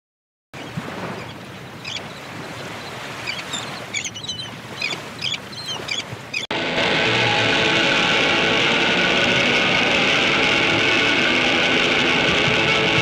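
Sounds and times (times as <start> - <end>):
birds chirping: 0.6 - 6.5
surf washing on a beach: 0.6 - 13.0.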